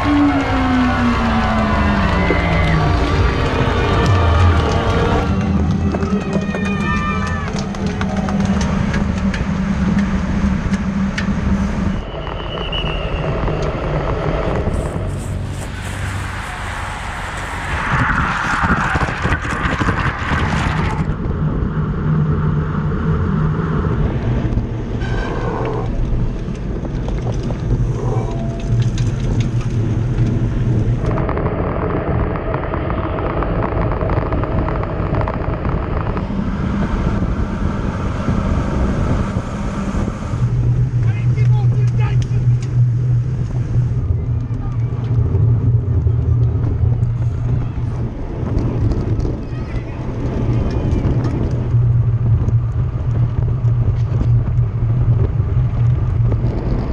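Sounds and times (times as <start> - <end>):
bicycle tyre noise on road: 0.0 - 56.9
steady engine hum: 0.0 - 56.9
wind rushing over microphone: 0.0 - 56.9.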